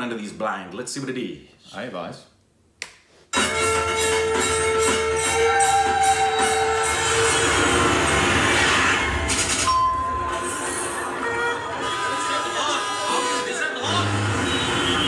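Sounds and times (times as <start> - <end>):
music with long held tones: 3.4 - 15.0
busy street noise: 3.8 - 15.0.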